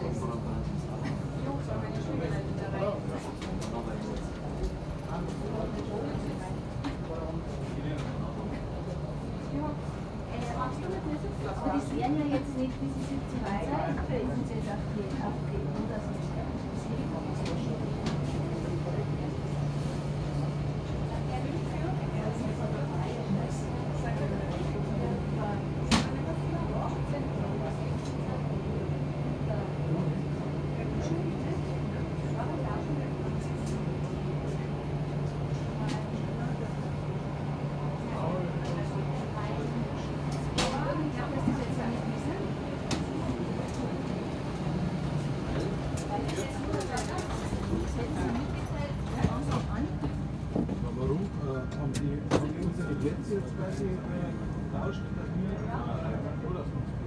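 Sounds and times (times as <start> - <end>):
people talking indistinctly: 0.0 - 56.9
faint background voices: 0.0 - 57.0.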